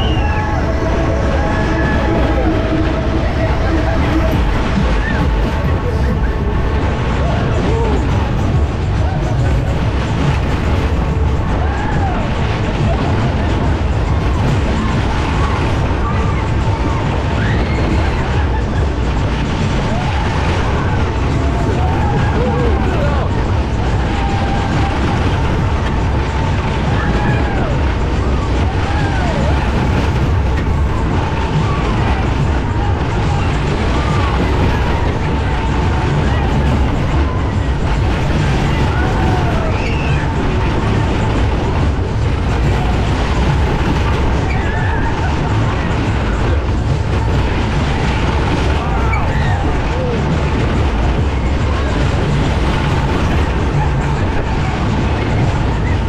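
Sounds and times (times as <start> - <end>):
loud ride music with heavy bass: 0.0 - 56.0
ride cars rumbling on track: 0.0 - 56.0
voices: 0.0 - 56.0.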